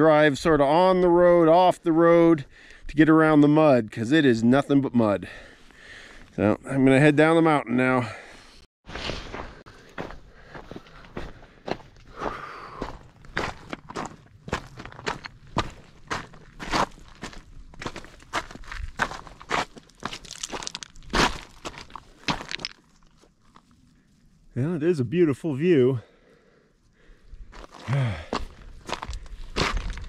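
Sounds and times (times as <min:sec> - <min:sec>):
footsteps crunching on snow and gravel: 0:08.9 - 0:24.1, 0:27.4 - 0:30.0.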